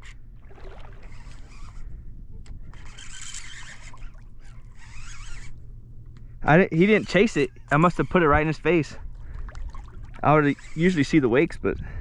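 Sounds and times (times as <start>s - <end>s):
water rippling around a kayak: 0.0s - 6.2s, 6.9s - 12.0s
steady low hum: 0.0s - 12.0s
wind: 0.0s - 12.0s.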